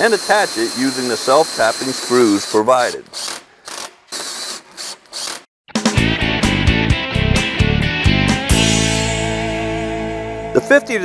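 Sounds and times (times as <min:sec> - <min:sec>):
cordless drill driving screw: 0:00.0 - 0:05.5
rock music with drums: 0:05.7 - 0:10.8.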